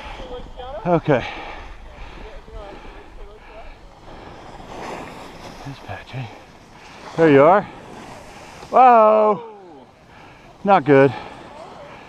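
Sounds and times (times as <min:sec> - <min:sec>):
wind rumbling on microphone: 0:00.0 - 0:07.2
skis hissing over snow: 0:01.7 - 0:09.0.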